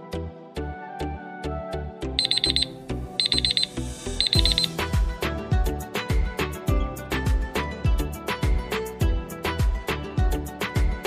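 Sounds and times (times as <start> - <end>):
background music with steady beat: 0.0 - 11.0
alarm clock beeping: 2.2 - 4.8.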